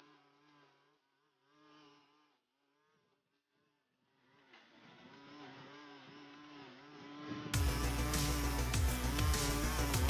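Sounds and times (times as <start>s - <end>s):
string trimmer engine running: 4.9s - 10.0s.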